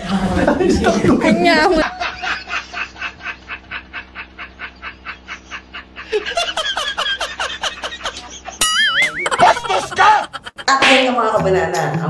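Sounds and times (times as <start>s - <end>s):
man laughing: 0.4s - 10.7s.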